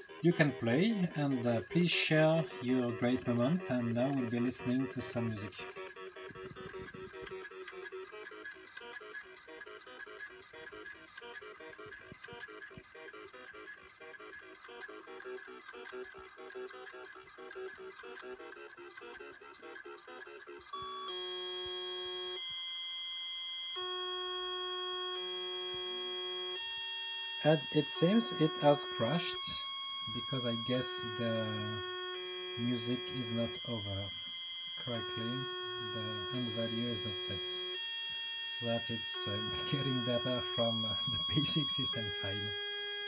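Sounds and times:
two-voice computer speaker tune: 0:00.2 - 0:05.7, 0:27.4 - 0:32.0, 0:32.6 - 0:34.2, 0:34.8 - 0:37.8, 0:38.5 - 0:42.6
held tones jumping in pitch: 0:27.4 - 0:43.0.

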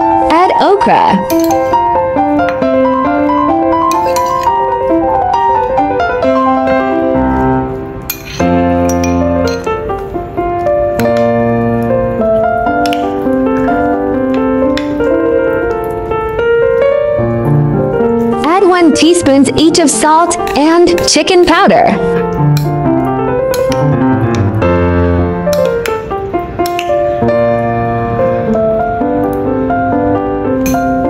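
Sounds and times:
gentle piano music: 0:00.0 - 0:31.0.

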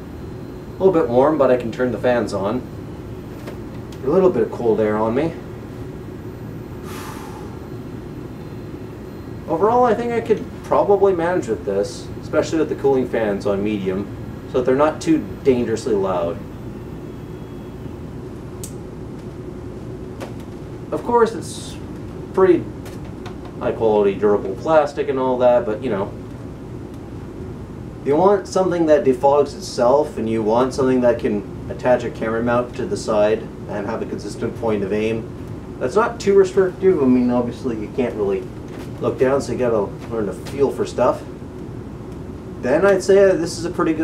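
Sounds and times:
small cooling fans whirring: 0:00.0 - 0:44.0.

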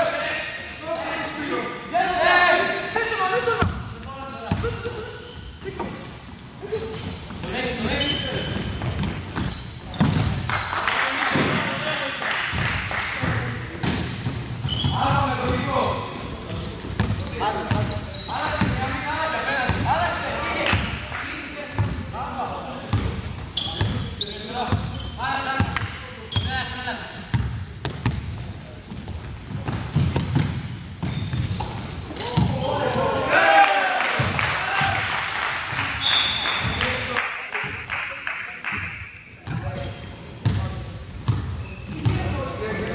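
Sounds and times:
sneaker squeaks: 0:00.0 - 0:33.1, 0:35.7 - 0:42.9
players shouting: 0:32.2 - 0:35.2.

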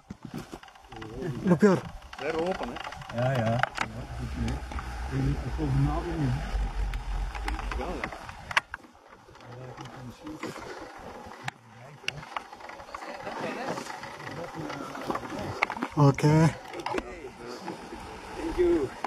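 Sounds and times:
wind rumbling on microphone: 0:00.9 - 0:09.4.

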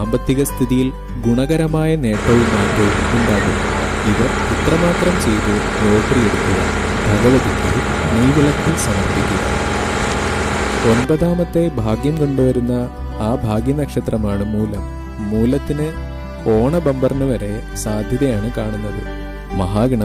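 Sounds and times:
faint music: 0:02.0 - 0:11.4
boat engine hum: 0:02.2 - 0:11.1
water rushing along hull: 0:02.2 - 0:11.1.

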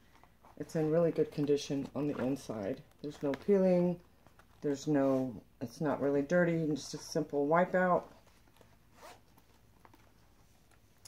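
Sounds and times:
leather wallet clicks and rustles: 0:08.0 - 0:11.0.

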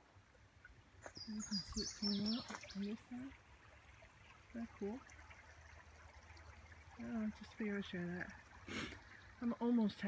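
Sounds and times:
small stream trickling: 0:00.0 - 0:10.0.

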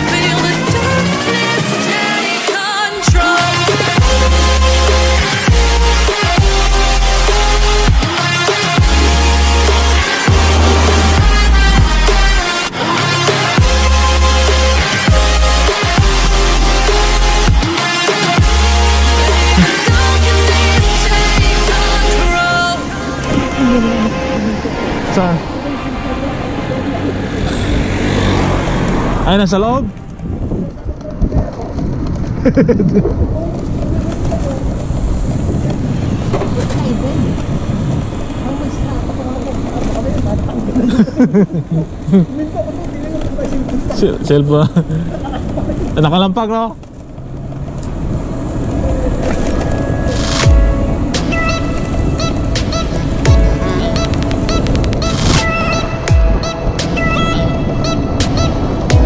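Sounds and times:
steady music beat: 0:00.0 - 0:24.3, 0:50.2 - 0:59.0
road and wind noise: 0:00.0 - 0:59.0
high honk-like notes: 0:03.2 - 0:27.0, 0:49.8 - 0:59.0
deep falling bass hit: 0:08.8 - 0:12.5.

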